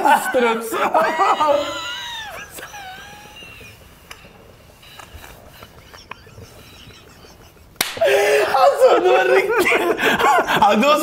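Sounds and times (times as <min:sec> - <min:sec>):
breathless laughter: 0:00.0 - 0:10.7
high wheezing squeal: 0:01.1 - 0:07.4
soft gasps: 0:08.0 - 0:08.6.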